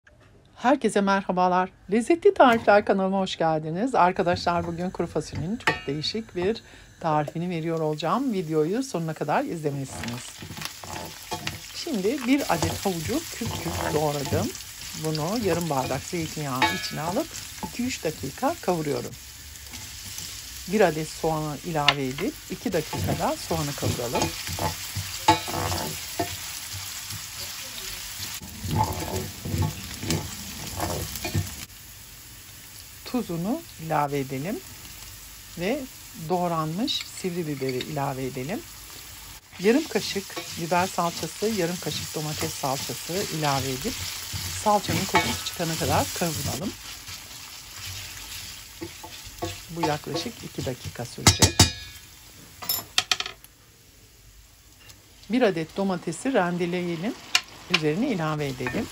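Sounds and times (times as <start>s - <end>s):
vegetables sizzling in oil: 2.2s - 58.9s
wooden spoon scraping pan: 9.5s - 19.1s, 21.8s - 31.7s, 39.6s - 51.2s.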